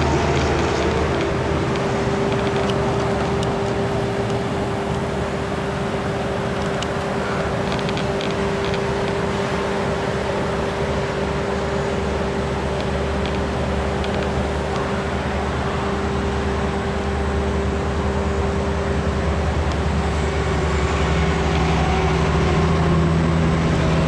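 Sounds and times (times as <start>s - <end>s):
vehicle engine running: 0.0s - 24.0s.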